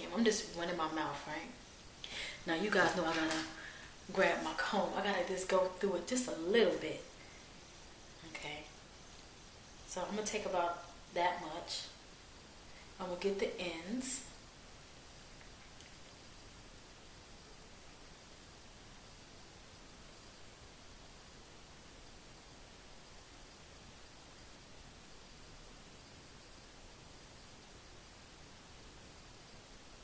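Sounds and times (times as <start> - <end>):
background hiss: 0.0 - 30.0.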